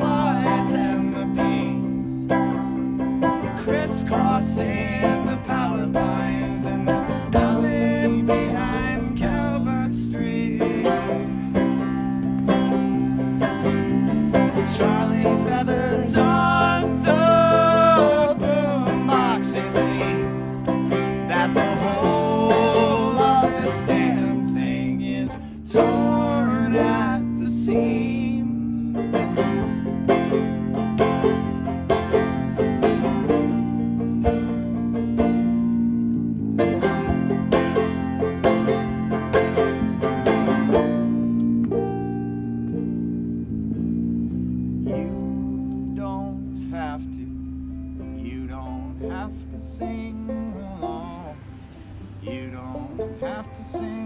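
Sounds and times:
man singing: 0:00.0 - 0:02.4, 0:03.4 - 0:11.4, 0:14.5 - 0:29.5, 0:45.8 - 0:47.4, 0:48.2 - 0:51.5, 0:52.2 - 0:54.0
acoustic band with picked banjo: 0:00.0 - 0:54.0.

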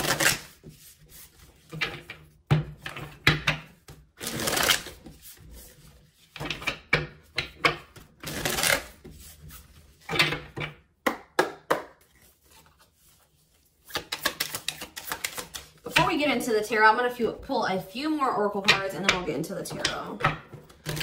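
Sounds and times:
cards slapping and tapping: 0:10.1 - 0:12.9, 0:13.8 - 0:16.1
cards riffling: 0:13.8 - 0:15.8.

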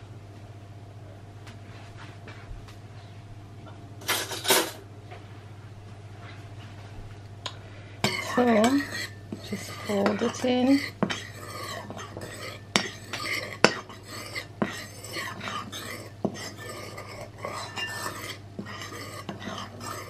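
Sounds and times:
metal spoon stirring batter: 0:08.0 - 0:20.0
spoon scraping bowl: 0:08.0 - 0:20.0.

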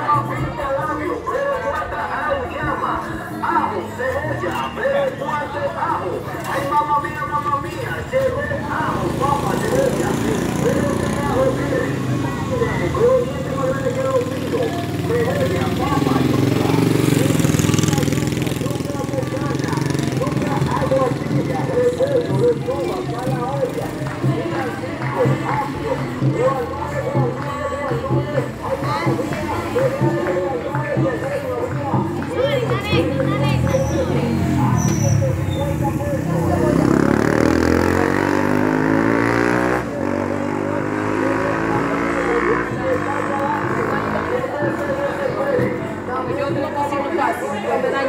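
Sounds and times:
motorcycle engine passing: 0:08.4 - 0:26.6, 0:32.6 - 0:46.6.

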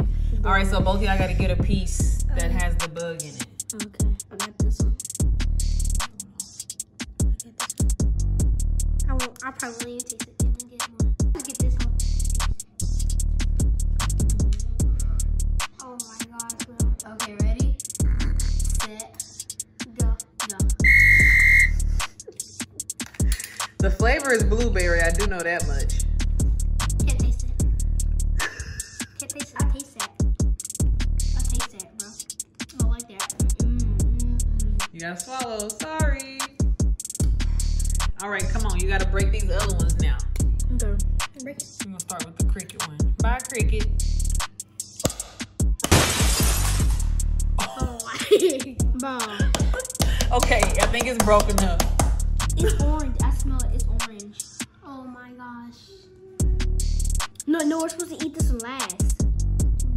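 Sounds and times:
hip-hop beat: 0:00.0 - 0:45.9, 0:46.9 - 0:54.7, 0:56.4 - 0:59.9
steady electronic beep: 0:20.8 - 0:21.9
hard candy shattering: 0:45.8 - 0:47.1.

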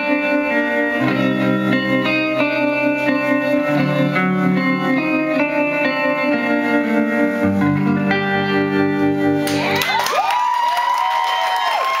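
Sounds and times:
audience cheering and applauding: 0:09.4 - 0:12.0
gliding whoops: 0:09.5 - 0:12.0.

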